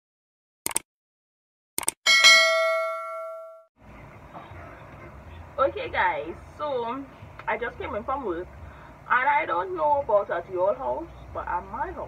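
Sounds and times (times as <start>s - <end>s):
bright bell ding: 2.1s - 3.7s.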